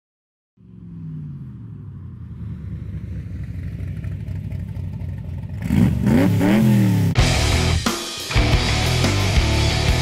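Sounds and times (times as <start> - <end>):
car engine rough rumble: 0.6 - 7.4.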